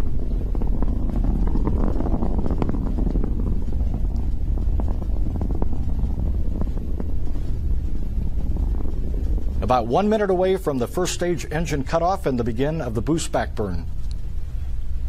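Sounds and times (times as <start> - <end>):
rocket engines rumbling and crackling: 0.0 - 15.0.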